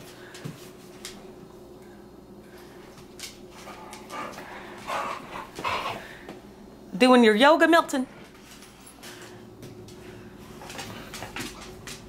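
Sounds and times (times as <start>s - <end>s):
dog breathy sounds: 3.7s - 6.3s.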